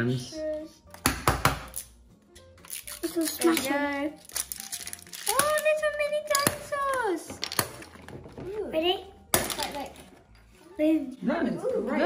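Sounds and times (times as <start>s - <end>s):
background music: 0.0s - 12.0s
plastic toy egg cracking: 2.6s - 8.2s.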